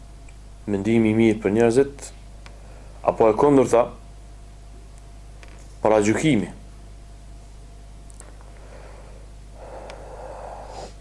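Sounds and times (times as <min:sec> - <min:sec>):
steady low hum: 0:00.0 - 0:11.0
man breathing in through nose: 0:08.5 - 0:11.0.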